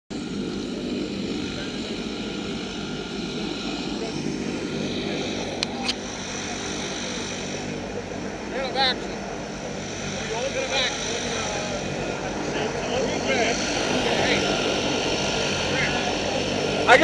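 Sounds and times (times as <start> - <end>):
propeller aircraft engines droning: 0.1 - 17.0.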